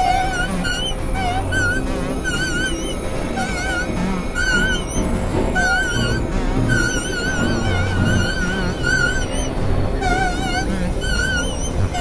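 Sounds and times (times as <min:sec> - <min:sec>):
experimental electronic music: 0:00.0 - 0:12.0
warbling high tones: 0:00.0 - 0:12.0.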